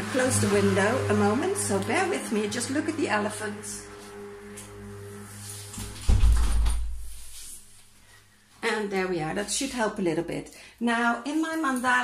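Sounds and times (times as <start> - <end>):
street noise hum: 0.0 - 6.4.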